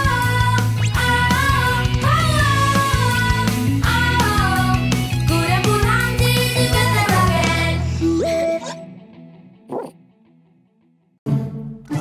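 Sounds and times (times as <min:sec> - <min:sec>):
cartoon puppy barking: 0:09.7 - 0:10.0.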